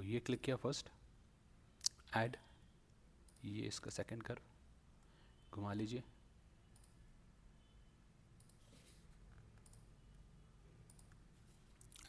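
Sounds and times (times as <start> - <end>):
computer mouse clicks: 6.7 - 7.0, 8.4 - 10.2, 10.8 - 11.3.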